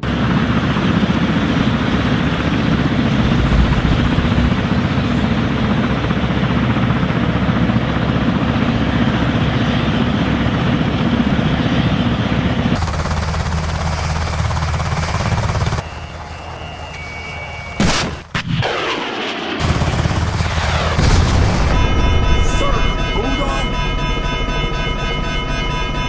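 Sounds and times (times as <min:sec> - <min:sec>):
helicopter rotor chopping: 0:00.0 - 0:17.8, 0:18.6 - 0:26.0.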